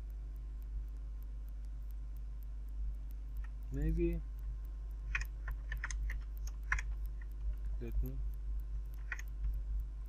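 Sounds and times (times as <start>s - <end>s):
steady low hum: 0.0s - 10.0s
computer keyboard typing: 4.9s - 10.0s.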